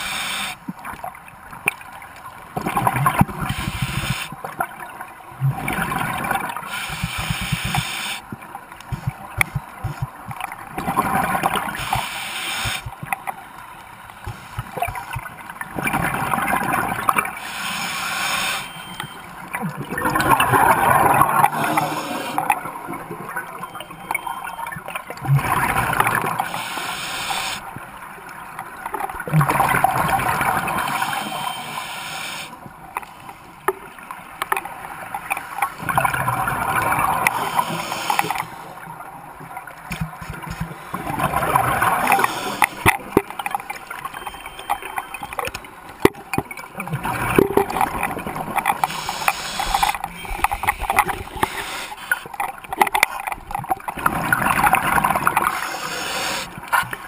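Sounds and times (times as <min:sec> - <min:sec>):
diver breathing through regulator: 0:00.0 - 0:00.6, 0:03.5 - 0:04.3, 0:06.7 - 0:08.2, 0:11.7 - 0:12.9, 0:17.4 - 0:19.2, 0:21.4 - 0:22.5, 0:26.4 - 0:27.6, 0:30.7 - 0:32.6, 0:37.1 - 0:38.7, 0:41.9 - 0:42.8, 0:48.8 - 0:52.3, 0:55.4 - 0:56.6
bubbles gurgling underwater: 0:19.5 - 0:23.8, 0:53.6 - 0:55.6.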